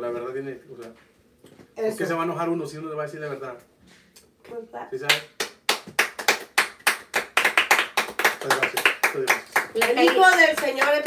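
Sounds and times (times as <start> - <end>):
people clapping: 5.0 - 11.0.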